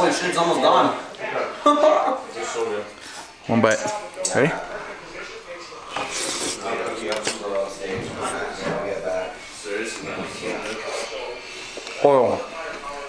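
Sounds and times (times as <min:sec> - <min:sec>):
indistinct voices talking: 0:00.0 - 0:13.0.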